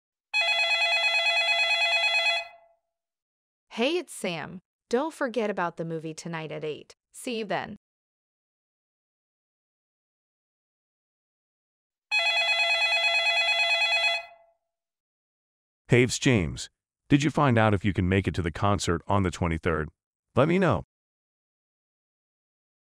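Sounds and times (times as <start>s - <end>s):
telephone ringing: 0.4s - 2.7s, 12.1s - 14.5s.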